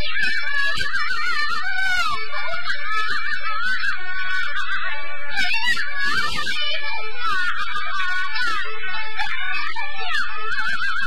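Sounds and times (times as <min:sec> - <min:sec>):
high vibrato opera singing: 0:00.0 - 0:11.0.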